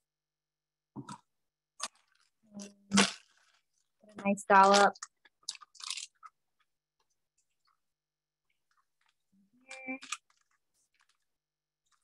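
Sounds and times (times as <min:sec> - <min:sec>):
frosting squishing in piping bag: 0:01.8 - 0:12.0.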